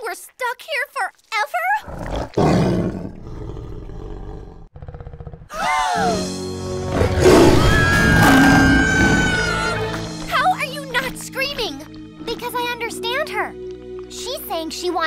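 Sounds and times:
dramatic music: 5.7 - 15.0
cartoon animal roaring: 6.9 - 9.6.

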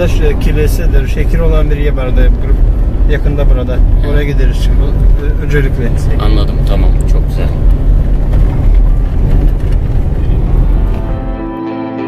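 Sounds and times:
engine and tyre rumble: 0.0 - 11.6.

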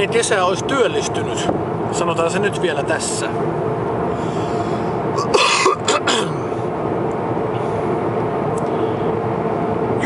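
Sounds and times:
road and engine noise in car: 0.0 - 10.0
man clearing his throat: 5.2 - 6.5.

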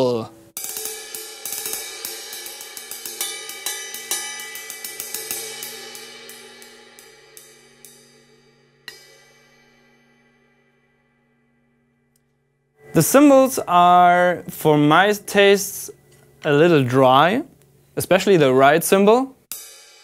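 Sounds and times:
ride cymbal struck with drumstick: 0.5 - 12.1, 19.5 - 20.0.

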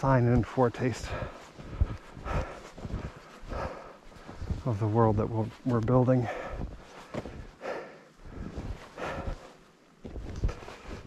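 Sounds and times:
footsteps in snow: 0.0 - 11.0.

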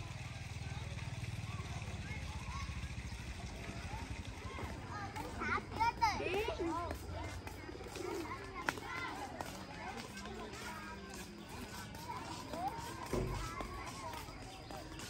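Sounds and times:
children squealing and chattering: 0.0 - 15.0
outdoor background noise: 0.0 - 15.0.

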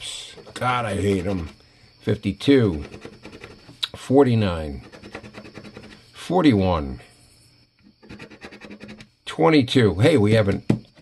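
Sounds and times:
coin scratching lottery ticket: 2.6 - 3.7, 4.7 - 6.1, 8.0 - 9.1.

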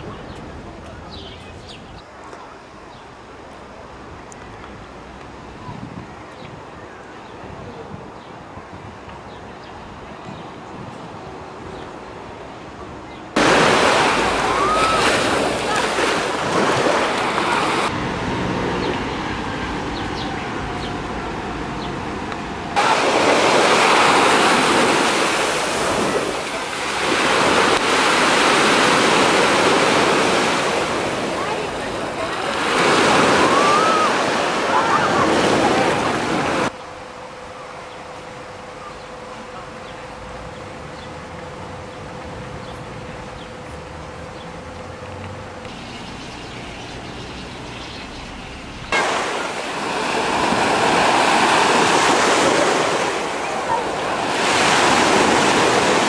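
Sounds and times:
waves washing up a sandy shore: 13.4 - 18.0, 21.2 - 36.8, 48.9 - 56.0.

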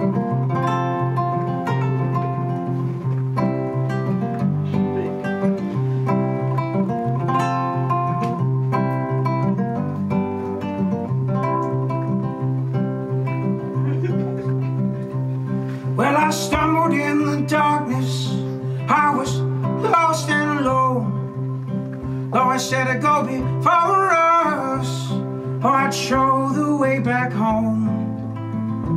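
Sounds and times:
acoustic guitar picked briskly: 0.0 - 28.9
man singing: 15.8 - 21.4, 22.2 - 28.9.

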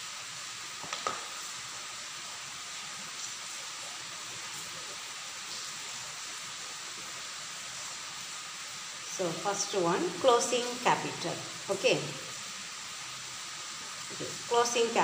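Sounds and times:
steady background hiss: 0.0 - 15.0.

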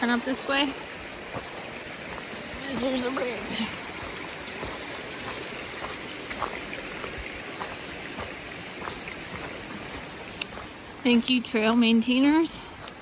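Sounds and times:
creek flowing water: 0.0 - 13.0
steps on dry leaves: 0.0 - 13.0.

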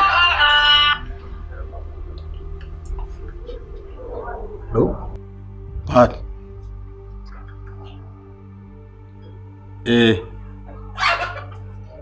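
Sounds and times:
background music drone: 0.0 - 12.0.

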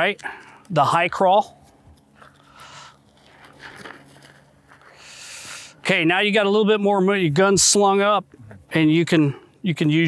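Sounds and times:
suit rustling on sandy dirt: 1.5 - 5.1.

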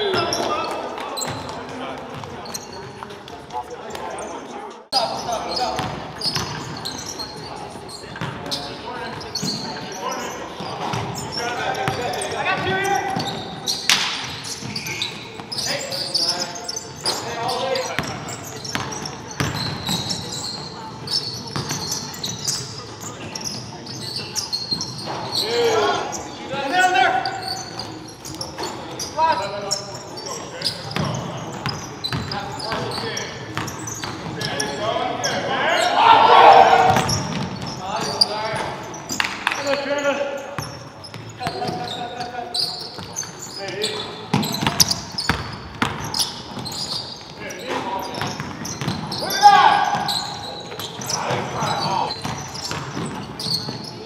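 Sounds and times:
players calling out: 5.0 - 54.0.

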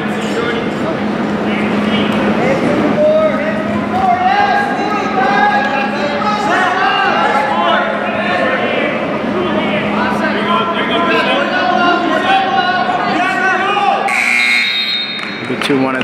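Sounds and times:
crowd chatter and shouts: 0.0 - 16.0
scoreboard buzzer: 14.1 - 15.4.

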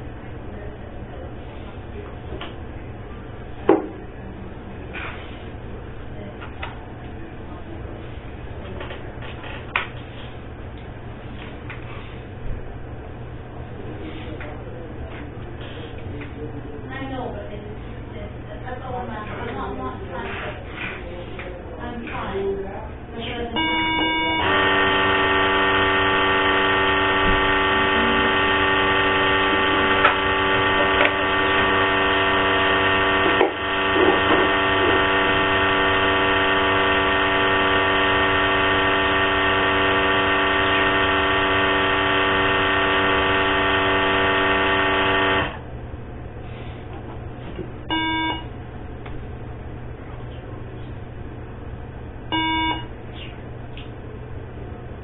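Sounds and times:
short beep: 23.6 - 24.6, 47.9 - 48.5, 52.3 - 52.9
electronic buzzing tone: 23.6 - 45.6, 47.9 - 48.5, 52.3 - 52.9.

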